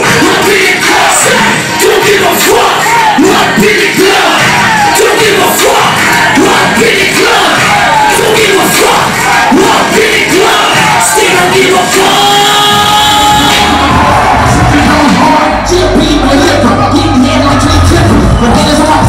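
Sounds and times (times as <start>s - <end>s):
crowd shouting and cheering: 0.0s - 19.0s
heavy bass: 0.0s - 19.0s
rapping over a beat: 0.0s - 19.0s.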